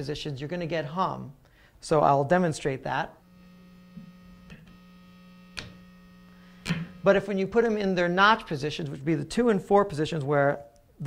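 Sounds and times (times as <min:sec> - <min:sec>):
guitar amplifier electrical hum: 0:00.7 - 0:09.5.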